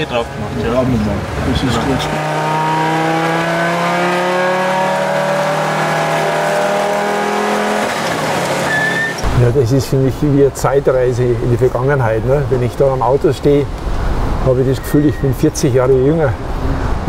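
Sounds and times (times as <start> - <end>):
car engine from inside cabin: 1.5 - 9.1.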